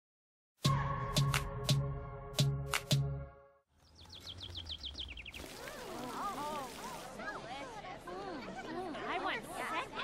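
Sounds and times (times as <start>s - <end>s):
birds chirping: 3.7s - 7.6s.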